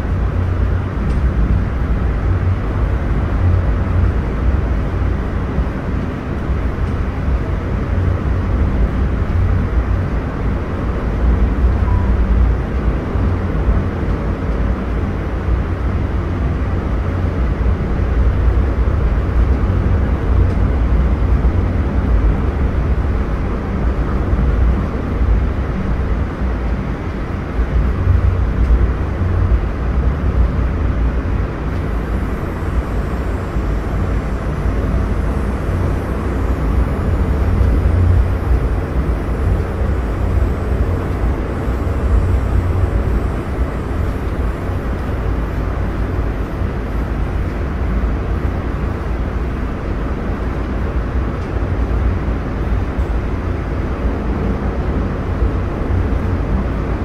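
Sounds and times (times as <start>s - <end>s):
rail car rumbling on track: 0.0s - 57.0s.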